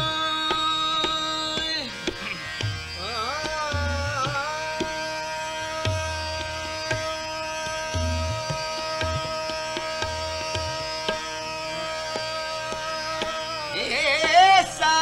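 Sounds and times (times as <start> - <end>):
tabla strokes: 0.0 - 15.0.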